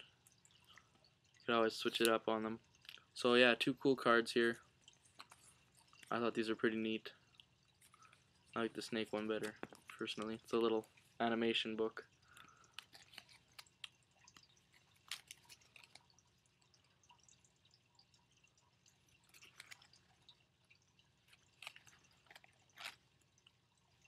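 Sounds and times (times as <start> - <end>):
paper card clicks and rustles: 21.4 - 23.2.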